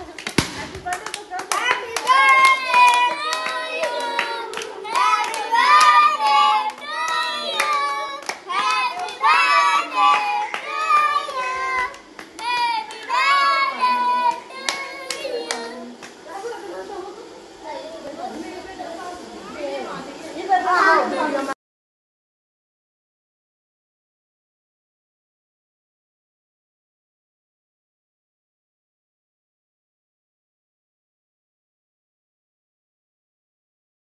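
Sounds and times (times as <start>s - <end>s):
voices: 0.0s - 21.6s
hands clapping: 0.1s - 6.0s, 6.7s - 13.4s, 14.6s - 16.2s.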